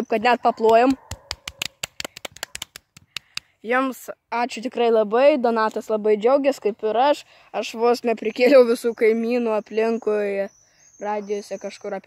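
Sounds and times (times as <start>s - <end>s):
sharp clicks and crackles: 0.7s - 3.5s.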